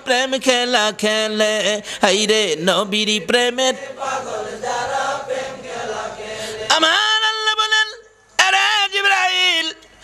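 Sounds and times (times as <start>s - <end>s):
man singing: 0.0s - 4.0s, 6.6s - 10.0s
voices chanting a devotional song: 0.0s - 9.8s.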